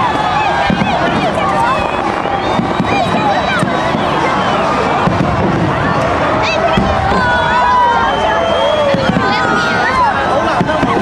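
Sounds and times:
crowd shouting and cheering: 0.0 - 11.0
fireworks bangs: 0.0 - 11.0.

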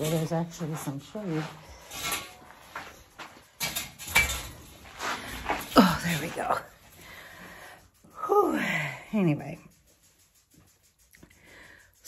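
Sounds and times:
scrapes and rustles: 0.0 - 8.2.

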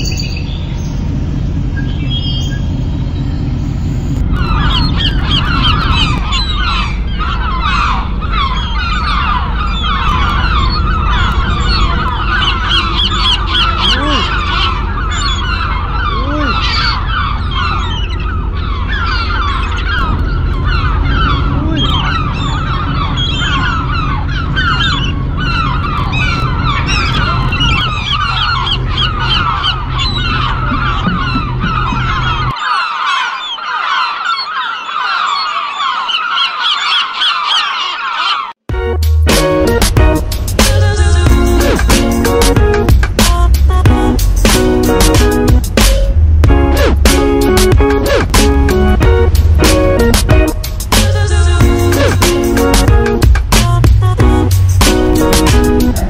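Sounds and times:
ferry engine droning: 0.0 - 32.8, 38.5 - 56.0.

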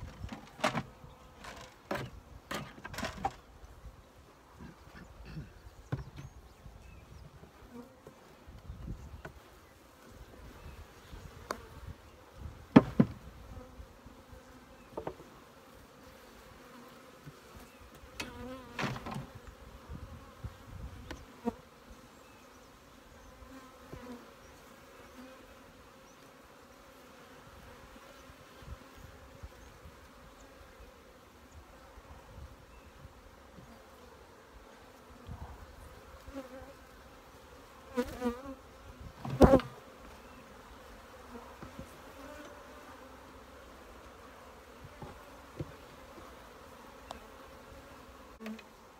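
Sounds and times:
bees buzzing: 9.3 - 48.9.

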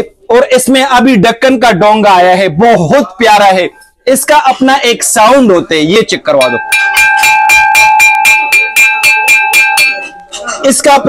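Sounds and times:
crockery bowl tapped ringing: 6.4 - 10.3.

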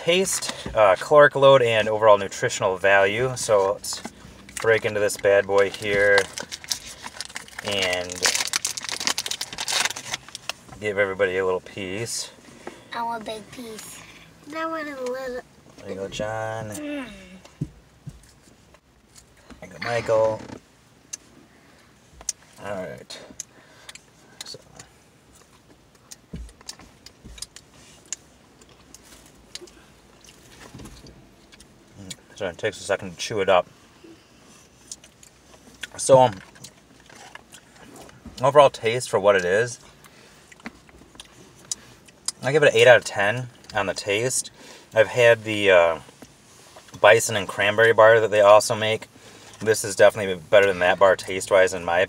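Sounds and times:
plastic wrapper crinkling: 5.6 - 10.6.

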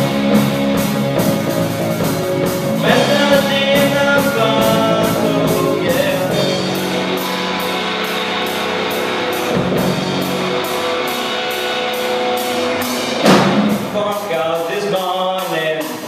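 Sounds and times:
live rock band playing: 0.0 - 16.0
cymbal crash: 6.3 - 14.4.

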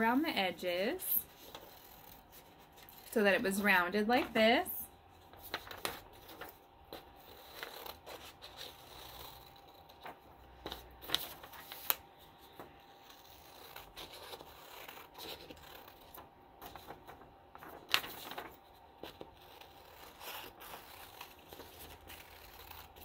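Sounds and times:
paper rustling: 5.3 - 23.0
scissors snipping paper: 5.5 - 10.0, 12.9 - 17.0, 17.9 - 23.0.

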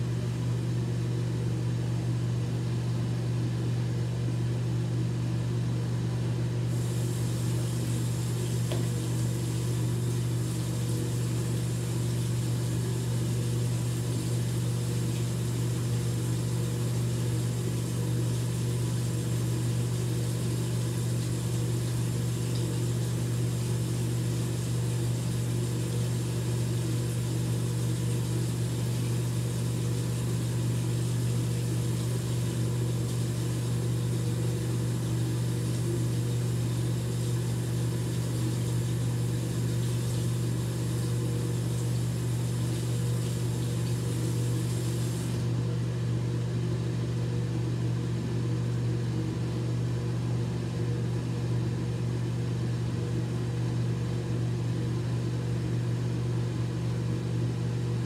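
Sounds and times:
steady low hum: 5.4 - 45.8
faucet running into sink: 6.7 - 23.0, 37.4 - 45.4.

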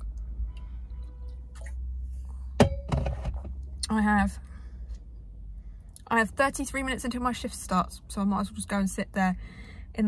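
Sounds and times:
low steady hum: 0.0 - 10.0
metal bottle knock ringing: 2.6 - 3.0.

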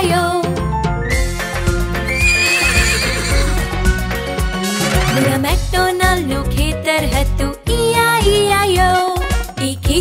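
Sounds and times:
upbeat children's backing music: 0.0 - 10.0
cartoon horse whinny: 2.1 - 3.6.

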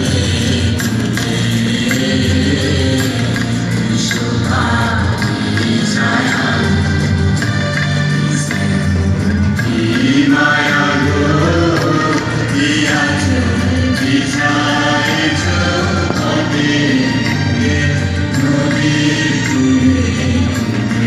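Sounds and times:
group of voices singing: 0.0 - 21.0.

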